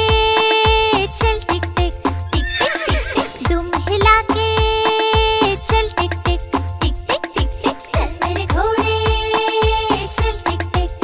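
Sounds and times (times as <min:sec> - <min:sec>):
upbeat children's song music: 0:00.0 - 0:11.0
cartoon horse whinny: 0:02.3 - 0:03.4.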